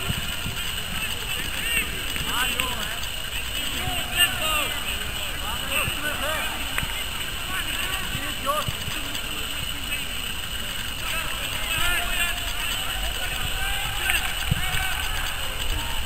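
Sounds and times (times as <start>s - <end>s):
distant players shouting: 0.0s - 8.9s, 10.8s - 16.0s.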